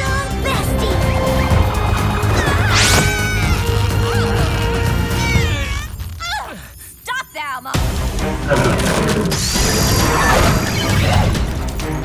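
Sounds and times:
dramatic music: 0.0s - 6.2s, 7.8s - 12.0s
strained cries: 0.6s - 6.5s.

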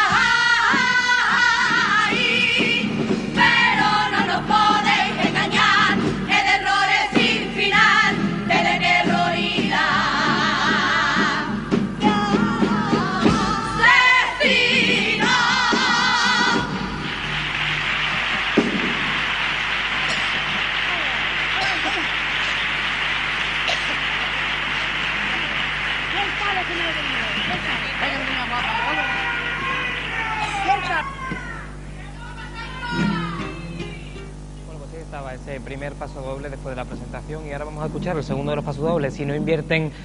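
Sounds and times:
choral singing: 0.0s - 17.4s
audience applauding: 16.8s - 31.0s
crowd shout: 28.3s - 33.4s.

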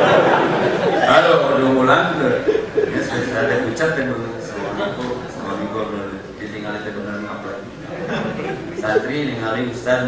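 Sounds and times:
man speaking into microphone: 1.0s - 7.8s, 8.8s - 10.0s
chuckling laughter: 2.3s - 3.7s.

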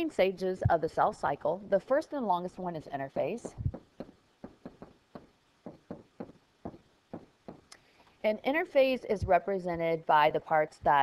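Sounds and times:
stylus tapping on tablet screen: 3.4s - 7.8s.

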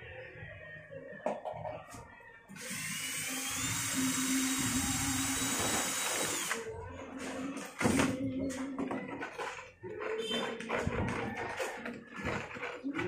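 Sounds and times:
cordless drill mixing: 2.6s - 6.7s.

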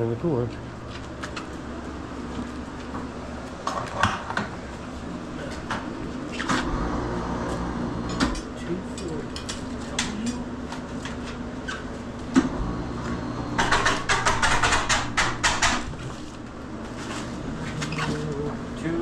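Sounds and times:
steady low hum: 0.0s - 19.0s
metal clanks and knocks: 13.6s - 16.2s.

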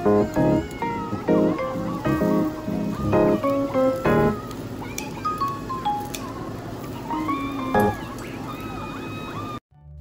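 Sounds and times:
high gliding melody: 0.0s - 4.4s.

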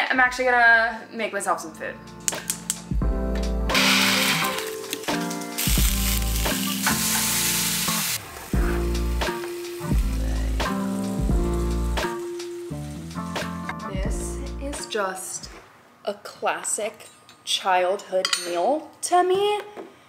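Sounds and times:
background music with bass line: 2.1s - 14.8s
sausage sizzling in a pan: 3.7s - 13.4s.

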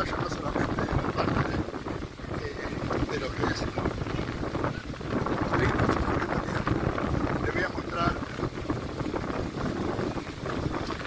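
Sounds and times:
people's voices: 0.0s - 8.4s
wind buffeting microphone: 0.0s - 11.0s.

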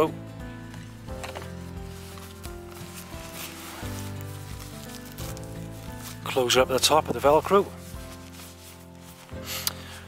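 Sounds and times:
background music: 0.0s - 10.0s
nylon pouch rustling: 0.0s - 10.0s.

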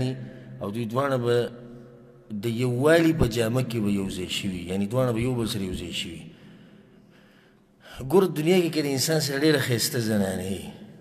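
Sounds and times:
man speaking: 0.0s - 1.7s, 2.3s - 6.3s, 7.9s - 10.8s.

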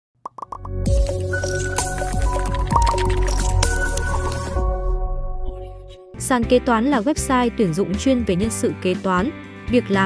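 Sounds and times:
intro music with beat: 0.4s - 6.0s.

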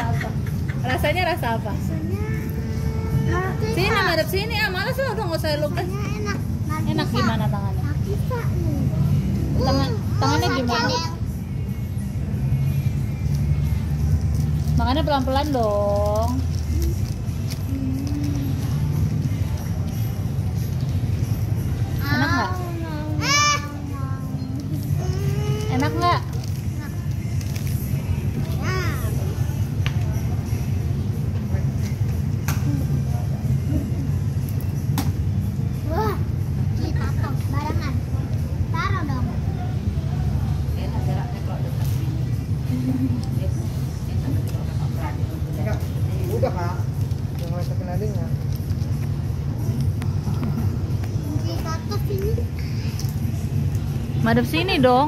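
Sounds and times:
faint voices talking: 0.0s - 55.0s
child's high-pitched voice: 5.8s - 7.3s, 7.9s - 8.9s, 9.6s - 11.2s, 22.0s - 26.1s, 28.6s - 29.1s, 35.8s - 39.5s, 51.3s - 53.0s.

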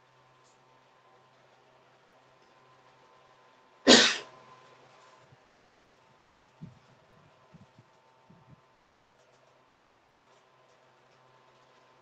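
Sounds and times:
person coughing: 3.9s - 4.3s.

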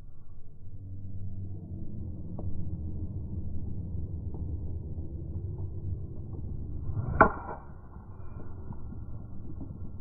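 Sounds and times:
steady low rumble: 0.0s - 10.0s
golf club striking ball: 7.0s - 7.7s.

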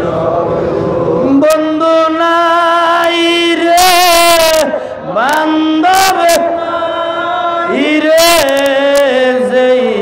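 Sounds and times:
man chanting into microphone: 0.0s - 10.0s.

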